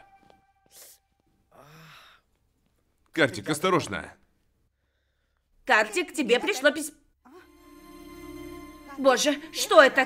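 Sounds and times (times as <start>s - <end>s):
person sighing: 0.7s - 2.3s.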